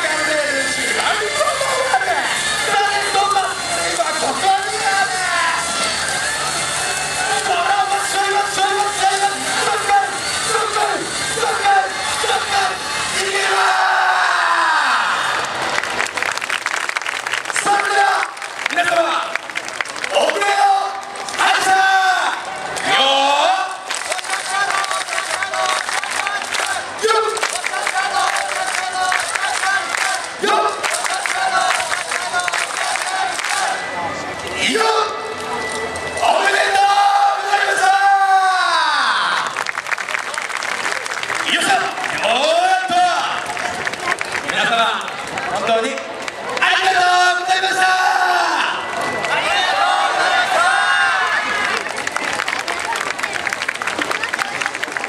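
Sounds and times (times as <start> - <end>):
music over loudspeakers: 0.0 - 15.7, 20.1 - 39.5
crowd shouting and cheering: 0.0 - 55.0
people shouting calls: 7.1 - 15.3, 20.2 - 33.9, 34.6 - 35.4, 36.2 - 39.5.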